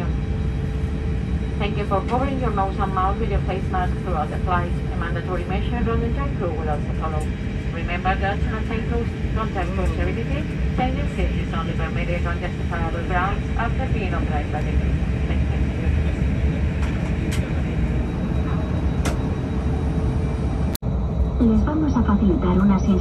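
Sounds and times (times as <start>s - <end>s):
aircraft engines and cabin air: 0.0s - 23.0s
cabin announcement voice: 1.4s - 19.2s, 21.4s - 23.0s.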